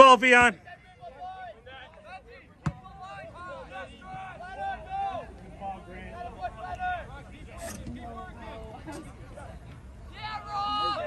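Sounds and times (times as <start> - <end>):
distant shouts and calls: 0.0 - 7.6, 9.5 - 11.0.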